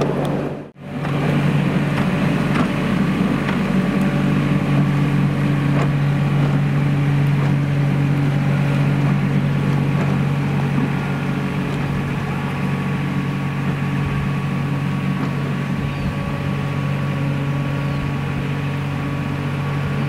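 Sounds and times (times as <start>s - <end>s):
engine running steady hum: 0.0s - 20.0s.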